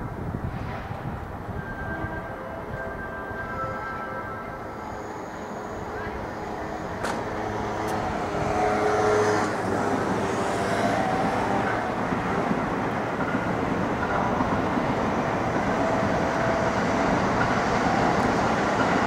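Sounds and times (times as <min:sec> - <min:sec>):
electric train rumbling: 0:00.0 - 0:19.0.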